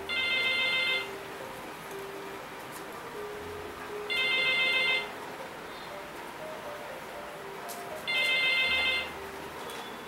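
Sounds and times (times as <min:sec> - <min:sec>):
desk telephone ringing: 0:00.1 - 0:01.1, 0:04.1 - 0:05.1, 0:08.1 - 0:09.2.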